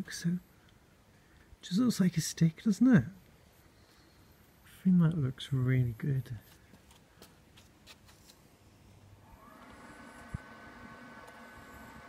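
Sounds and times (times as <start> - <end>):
faint background hiss: 0.0 - 12.0
faint steady hum: 8.3 - 12.0.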